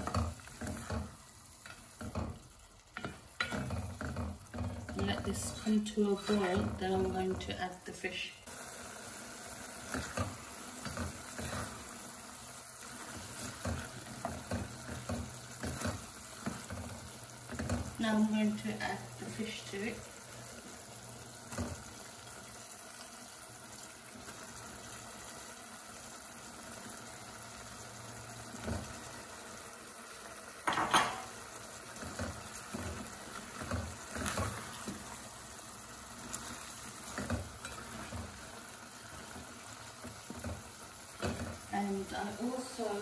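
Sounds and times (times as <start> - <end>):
spatula knocking and scraping pot: 0.0 - 7.5, 13.0 - 18.0
curry simmering in a pot: 0.0 - 43.0
loud thud in a pot: 30.6 - 31.3.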